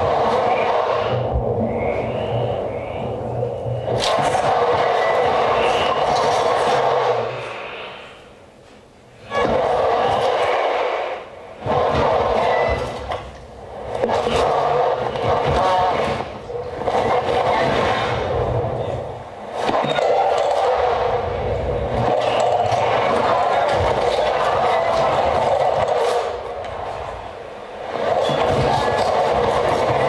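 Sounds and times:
grainy electronic noise: 0.0s - 8.5s
low rumble: 0.0s - 8.5s.

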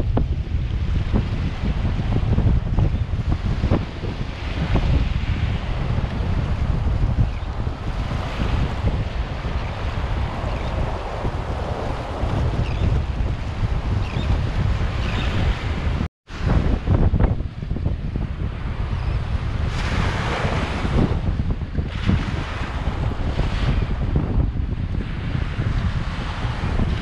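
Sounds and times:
sea waves breaking on beach: 0.0s - 27.0s
wind buffeting microphone: 0.0s - 27.0s.

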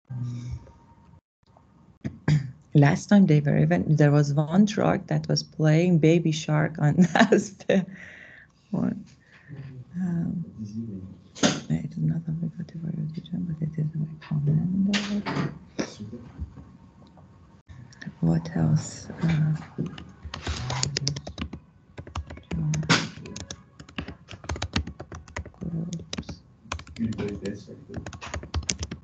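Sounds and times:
low voices talking: 9.5s - 11.2s, 27.0s - 28.1s
typing on computer keyboard: 19.8s - 29.0s.

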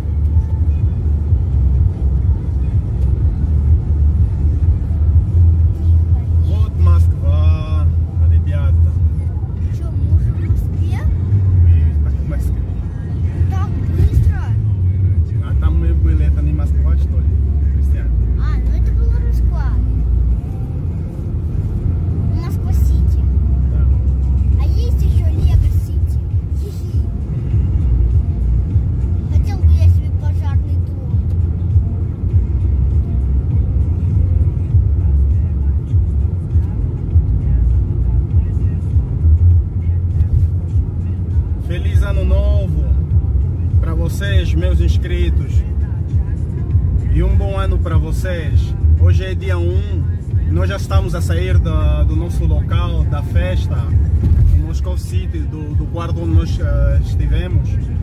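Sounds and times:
car cabin road and engine rumble: 0.0s - 58.0s
music: 0.0s - 58.0s.

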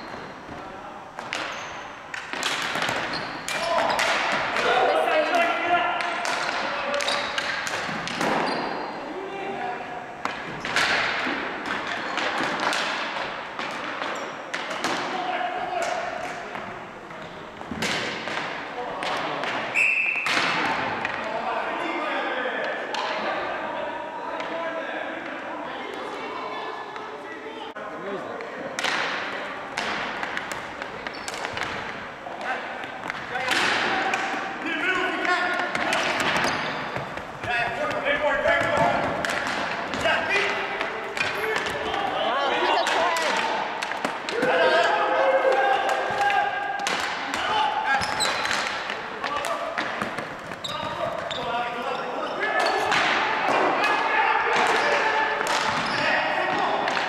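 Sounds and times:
sticks and ball clacking on floor: 1.2s - 8.4s, 28.4s - 42.2s, 42.8s - 51.4s
players shouting: 33.4s - 57.0s.

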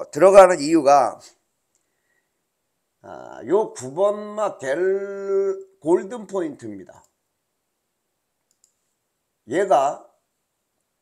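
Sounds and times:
computer mouse clicks: 8.4s - 8.9s.

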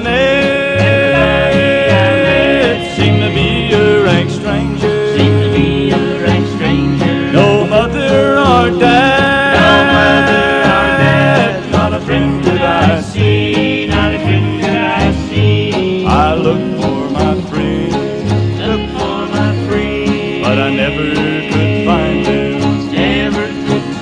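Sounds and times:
acoustic guitar: 0.0s - 24.0s
steel guitar sliding notes: 0.0s - 24.0s.

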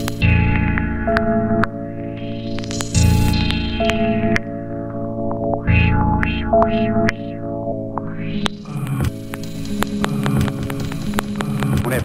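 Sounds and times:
low bass: 0.0s - 11.8s
sampled instrumental beat: 0.0s - 12.0s
sharp clicks: 7.9s - 12.0s.

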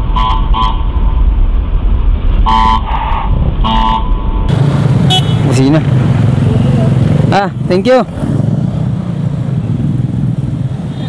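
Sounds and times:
scooter engine droning: 2.5s - 11.0s.

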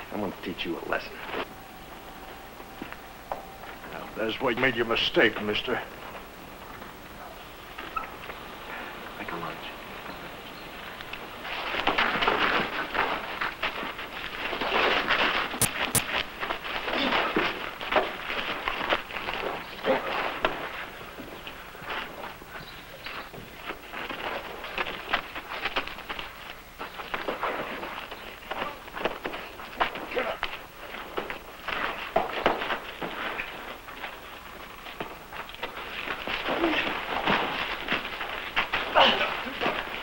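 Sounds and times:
scuffling feet: 0.0s - 40.0s
punch impacts: 15.6s - 16.2s
men grunting and shouting: 38.9s - 39.8s.

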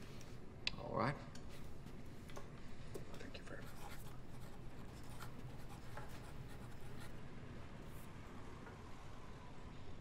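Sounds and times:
low room hum: 0.0s - 10.0s
pen scratching on paper: 3.6s - 7.2s.

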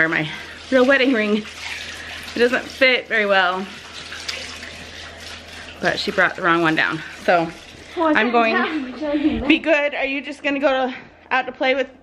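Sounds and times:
woman speaking: 5.8s - 12.0s.

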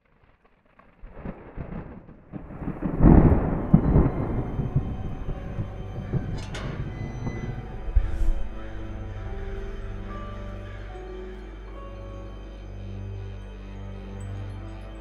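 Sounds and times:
thunder rumbling: 0.0s - 11.0s
eerie film music: 2.4s - 15.0s.

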